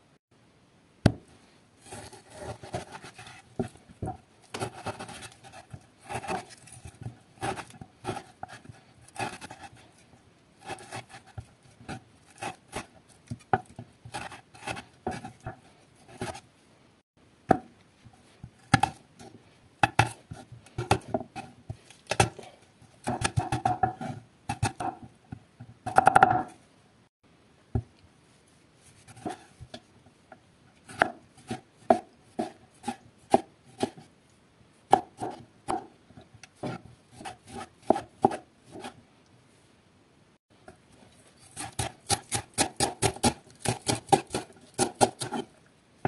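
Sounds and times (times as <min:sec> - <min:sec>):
knife chopping on wooden board: 0:19.8 - 0:21.5, 0:23.0 - 0:25.0, 0:30.9 - 0:34.0, 0:34.9 - 0:35.9, 0:36.6 - 0:39.0, 0:41.6 - 0:45.5.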